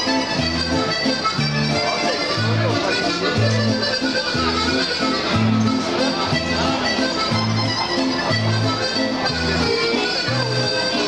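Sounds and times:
carousel music: 0.0s - 11.0s.

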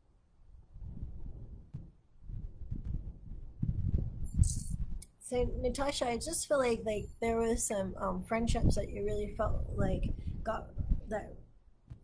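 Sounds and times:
thuds of handling a microphone: 1.6s - 5.0s.

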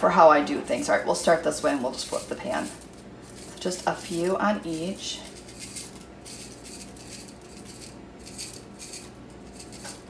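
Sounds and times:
steady low hum: 0.0s - 10.0s
sprinkles rattling: 1.6s - 10.0s.

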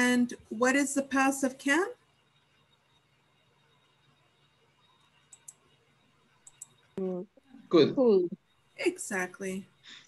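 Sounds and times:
faint clicks: 4.9s - 5.7s, 6.4s - 7.0s.

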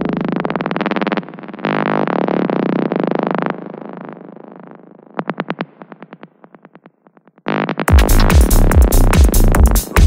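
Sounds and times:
rapidly pulsing synthesizer: 7.5s - 10.0s.

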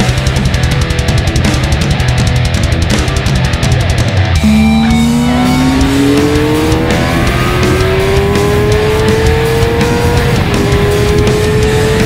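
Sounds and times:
motorbike engine pulling hard: 4.4s - 12.0s.

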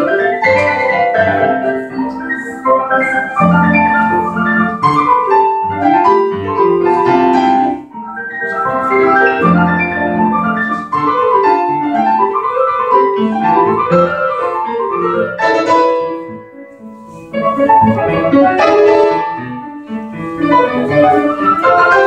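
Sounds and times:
grand piano classical piece: 0.0s - 22.0s.

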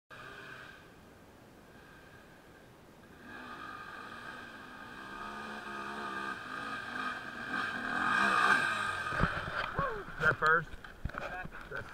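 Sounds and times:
dirt bike engine revving: 0.1s - 0.9s, 3.0s - 10.2s.

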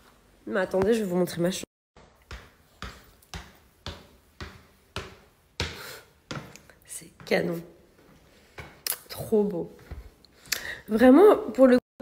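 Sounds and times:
footsteps climbing stairs: 2.0s - 10.2s.

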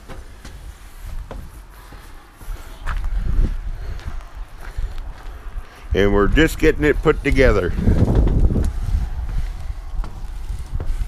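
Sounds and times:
soft walking knocks: 0.0s - 11.0s
wind buffeting microphone: 0.0s - 11.0s.

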